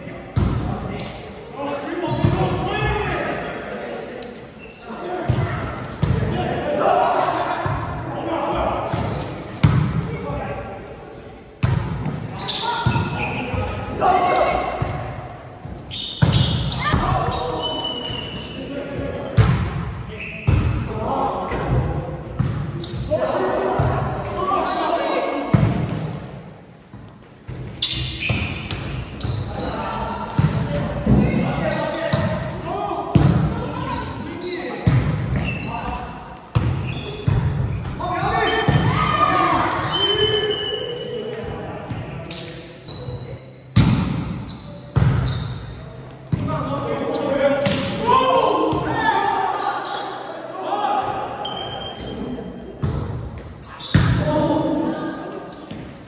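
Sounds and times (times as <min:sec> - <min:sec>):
volleyball slaps and thuds: 0:09.6 - 0:10.0, 0:34.8 - 0:35.5, 0:43.8 - 0:44.4.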